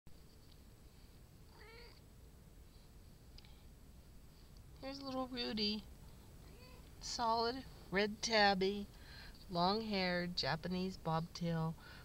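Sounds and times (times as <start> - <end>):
cat meowing faintly: 1.5 - 2.0.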